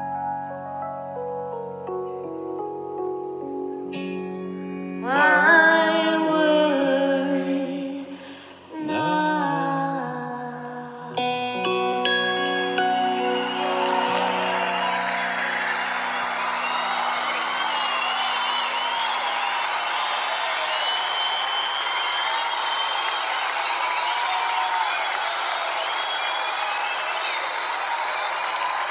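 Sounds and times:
live band final chord: 11.2s - 18.8s
audience applauding and cheering: 11.9s - 28.9s
whistles from audience: 12.7s - 28.9s.

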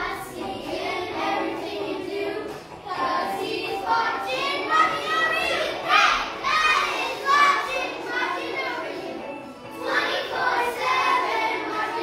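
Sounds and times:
children singing and calling out: 0.0s - 12.0s.

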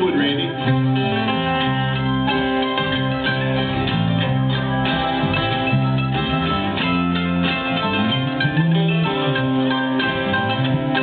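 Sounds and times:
bluegrass band playing: 0.0s - 11.0s.

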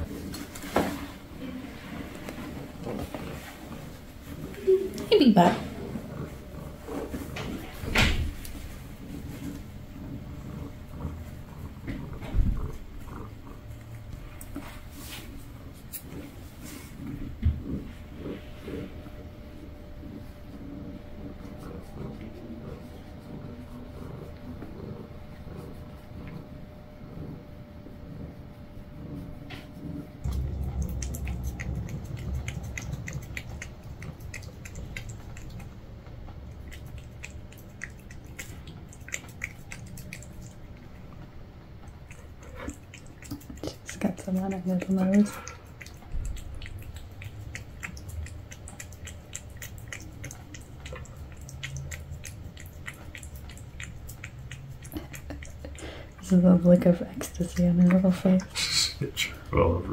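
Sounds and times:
low steady rumble: 0.0s - 59.9s
cat licking wet tongue clicks: 30.3s - 41.0s, 42.0s - 56.3s.

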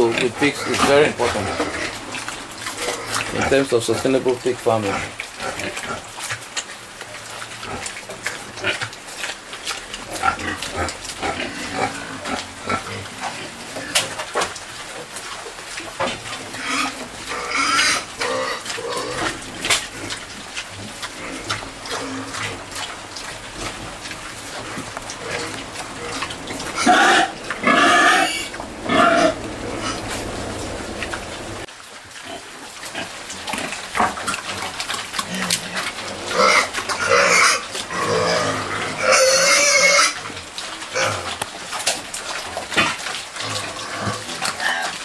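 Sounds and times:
pig calls: 0.0s - 6.4s, 16.2s - 31.7s
pigs snuffling and chewing: 0.0s - 45.0s.

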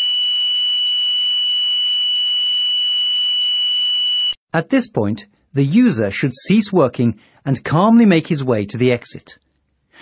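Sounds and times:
high-pitched alarm tone: 0.0s - 4.4s.

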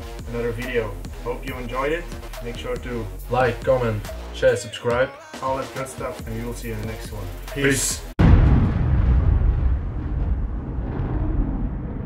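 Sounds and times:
deep rumbling cinematic boom: 8.2s - 12.0s.

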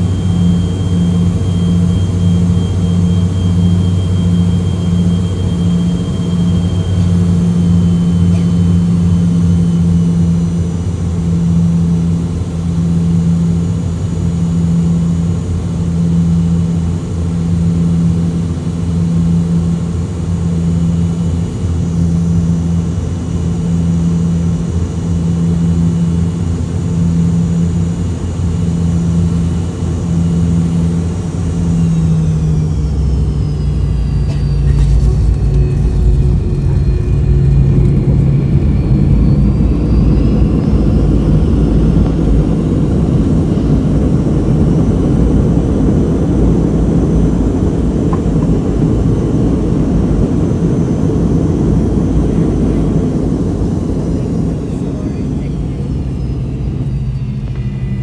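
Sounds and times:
jet engine drone in cabin: 0.0s - 58.0s
wheels rumbling on runway: 0.0s - 58.0s.

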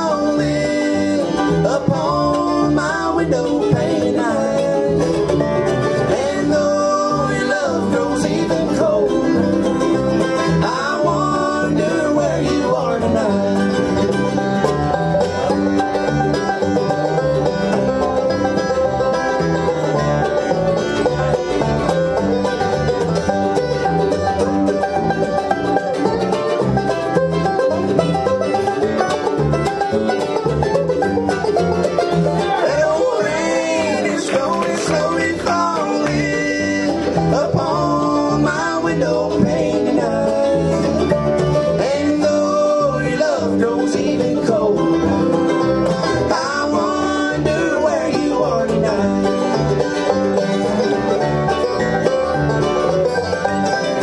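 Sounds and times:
bluegrass band playing: 0.0s - 54.0s
sliding dobro notes: 0.0s - 54.0s.

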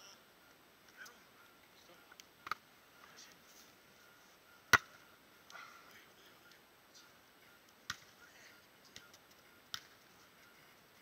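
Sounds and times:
volleyball being hit: 4.7s - 5.0s, 7.8s - 8.2s, 8.9s - 10.0s.

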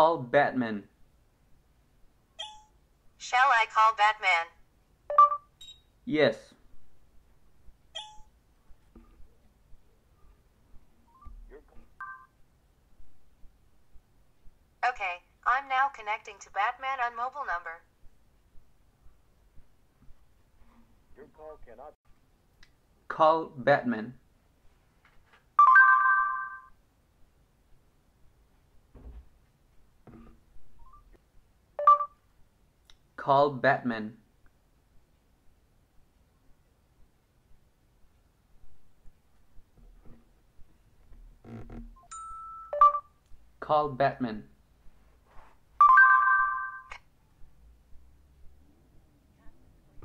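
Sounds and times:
electronic chime from phone: 42.1s - 43.1s, 45.8s - 47.0s.

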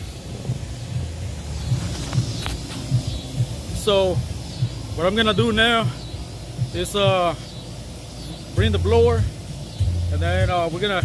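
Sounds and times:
blower humming: 0.0s - 11.0s.

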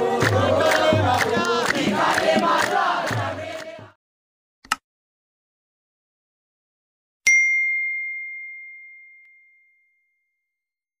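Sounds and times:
bell ding: 7.3s - 10.6s.

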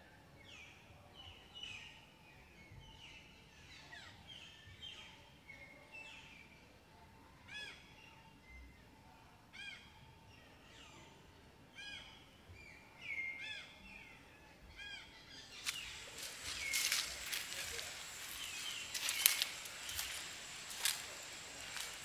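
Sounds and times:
forest bird calling: 14.8s - 22.0s
birds whistling: 15.5s - 22.0s.

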